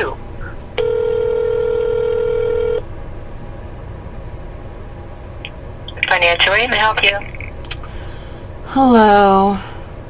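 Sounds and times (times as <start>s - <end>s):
telephone ringback tone: 0.8s - 2.8s.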